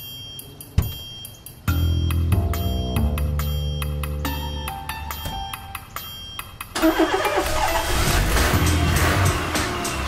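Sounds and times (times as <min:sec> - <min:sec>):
car engine starting and revving: 0:06.7 - 0:10.0.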